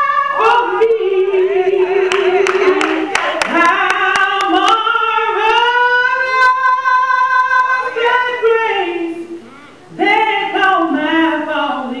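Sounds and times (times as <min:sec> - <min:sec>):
woman singing into microphone: 0:00.0 - 0:12.0
hand clapping: 0:02.1 - 0:04.8.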